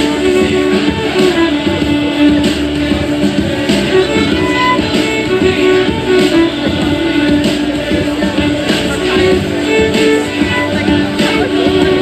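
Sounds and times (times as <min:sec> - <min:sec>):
plucked string accompaniment: 0:00.0 - 0:12.0
violin bowed melody: 0:00.0 - 0:12.0.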